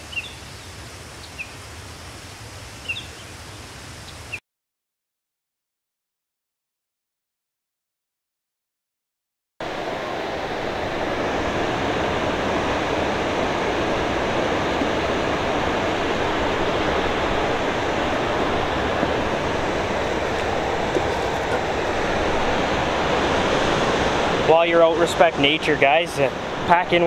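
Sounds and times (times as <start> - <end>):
white water rushing: 9.6 - 27.0.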